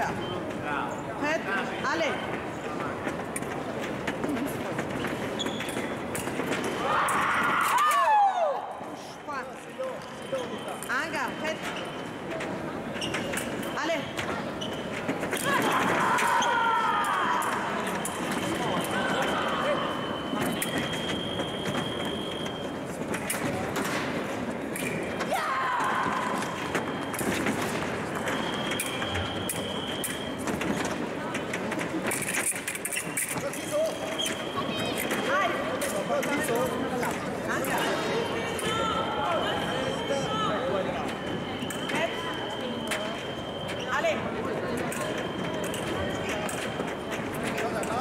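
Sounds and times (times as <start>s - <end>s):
voices in sports hall: 0.0s - 48.0s
sneaker squeaks: 3.5s - 7.9s, 9.0s - 23.9s, 24.7s - 48.0s.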